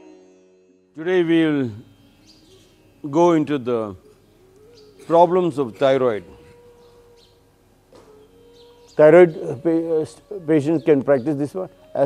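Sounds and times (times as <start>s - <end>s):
faint bird calls: 1.7s - 12.0s.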